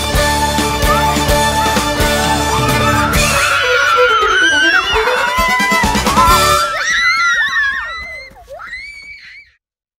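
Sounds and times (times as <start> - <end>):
children and adults cheering: 0.7 - 9.6.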